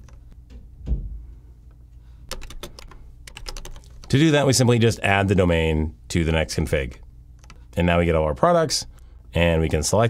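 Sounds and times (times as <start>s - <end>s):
computer keyboard typing: 2.3s - 4.2s, 7.4s - 7.6s.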